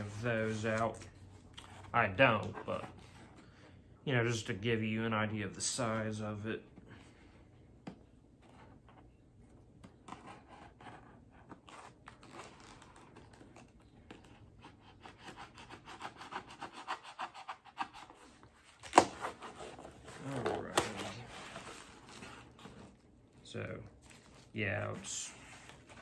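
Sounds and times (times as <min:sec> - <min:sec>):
cardboard snapping: 0:18.8 - 0:19.3.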